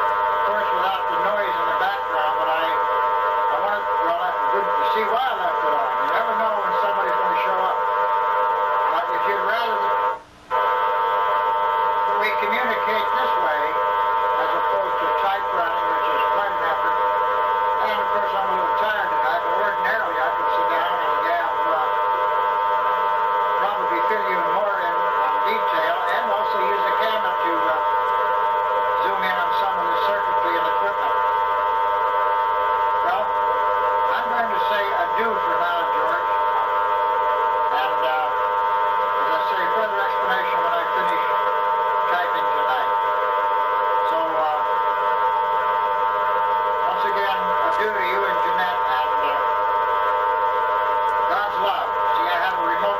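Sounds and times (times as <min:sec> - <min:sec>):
electronic drone of fixed tones: 0:00.0 - 0:52.9.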